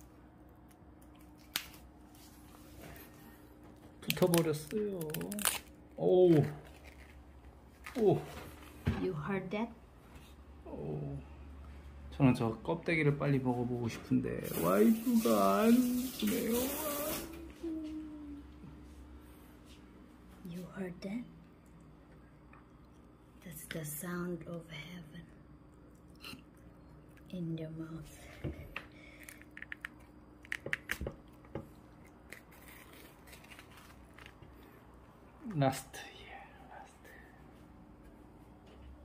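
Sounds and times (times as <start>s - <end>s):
crispy pork skin crackling: 0.5s - 2.2s, 4.0s - 8.3s, 31.8s - 34.5s.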